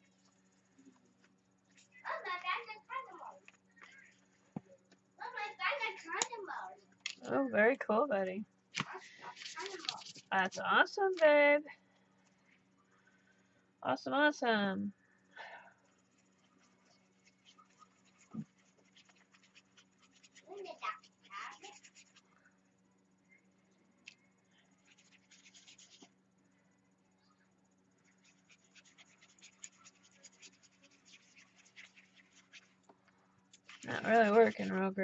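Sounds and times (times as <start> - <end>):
paintbrush scratching on paper: 15.9 - 22.3, 24.8 - 26.2, 28.0 - 32.8, 33.6 - 35.0.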